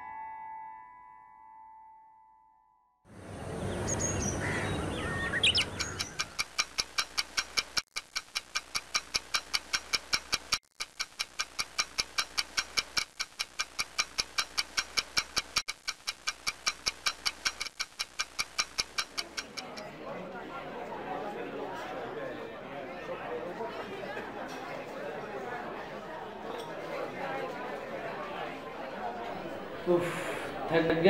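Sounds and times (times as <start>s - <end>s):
fast even ticking: 5.4s - 19.9s.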